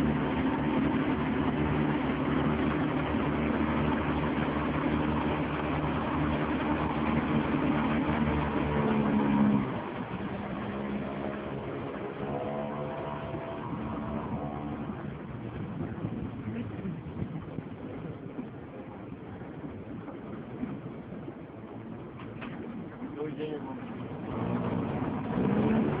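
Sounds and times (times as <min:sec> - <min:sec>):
boat engine running: 0:00.0 - 0:26.0.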